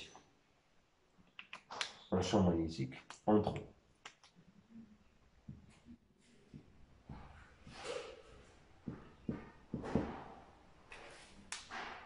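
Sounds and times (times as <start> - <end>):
marker tapping on a whiteboard: 8.8 - 10.4.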